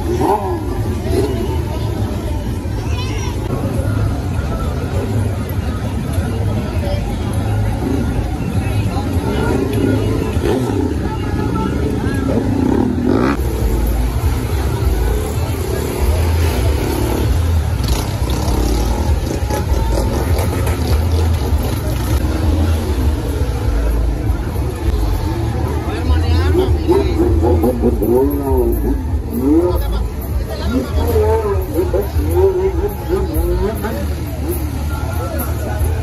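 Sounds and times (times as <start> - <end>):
crowd voices: 0.0 - 36.0
vehicle engines rumbling: 0.0 - 36.0.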